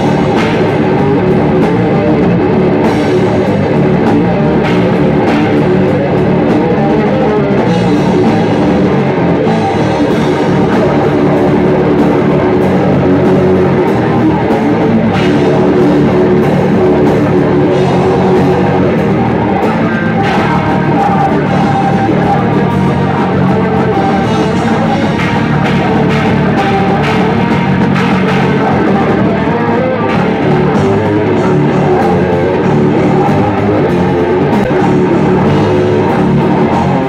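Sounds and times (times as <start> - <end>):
bass guitar: 0.0 - 37.0
distorted electric guitar: 0.0 - 37.0
drum kit: 0.0 - 37.0.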